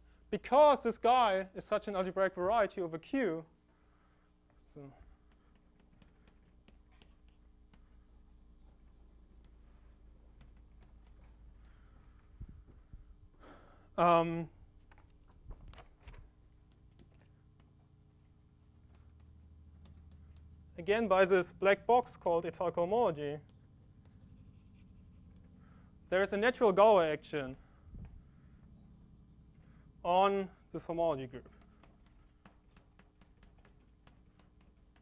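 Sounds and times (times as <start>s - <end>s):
low room hum: 0.0s - 35.0s
chalk tapping and scratching: 3.9s - 12.2s, 15.8s - 26.6s, 27.6s - 35.0s.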